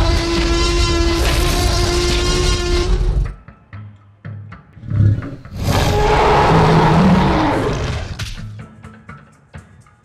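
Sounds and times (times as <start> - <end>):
rough dinosaur roar: 4.8 - 8.2.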